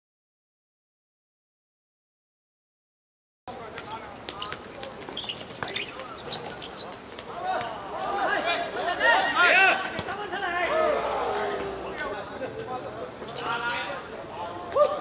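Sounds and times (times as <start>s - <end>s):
running footsteps: 3.5s - 12.2s
men shouting: 7.3s - 12.2s
ball thuds: 9.8s - 10.3s.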